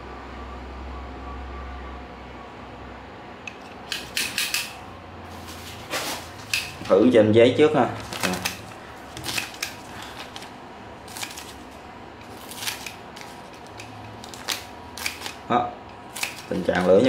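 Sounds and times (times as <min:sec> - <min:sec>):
tin snips cutting paper: 0:03.5 - 0:04.7, 0:11.1 - 0:15.4, 0:16.0 - 0:17.0.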